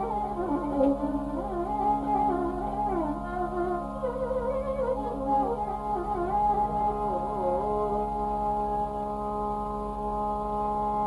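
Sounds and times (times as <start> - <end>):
steady drone: 0.0 - 11.0
violin melody with sliding ornaments: 0.0 - 11.0.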